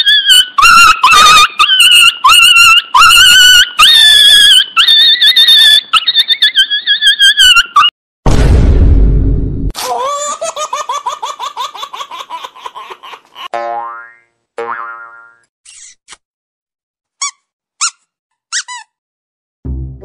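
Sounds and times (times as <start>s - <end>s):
cartoon wobbling boing: 13.5s - 15.4s
short high squeaks: 15.6s - 16.2s, 17.2s - 19.0s
music: 19.6s - 20.0s.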